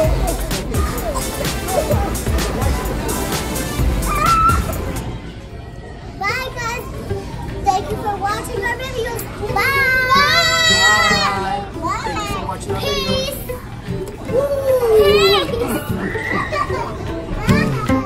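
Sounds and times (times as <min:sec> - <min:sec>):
music playing: 0:00.0 - 0:05.4, 0:06.9 - 0:18.0
children calling out and squealing: 0:04.0 - 0:05.1, 0:09.0 - 0:13.6, 0:14.2 - 0:18.0.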